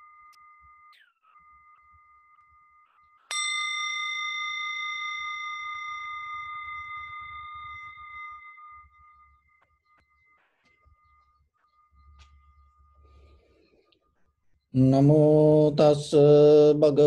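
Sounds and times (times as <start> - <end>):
metal bell ringing: 3.3 - 13.3.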